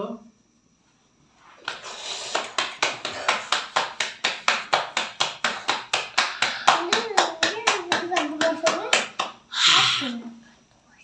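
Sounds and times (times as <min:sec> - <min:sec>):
dough slapped between palms: 0:01.6 - 0:09.5
wavering voice: 0:09.5 - 0:10.4.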